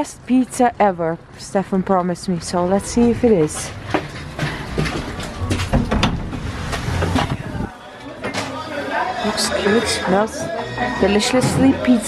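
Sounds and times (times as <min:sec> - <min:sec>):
footsteps: 0:01.6 - 0:08.6
heavy door pushed open: 0:04.6 - 0:07.6.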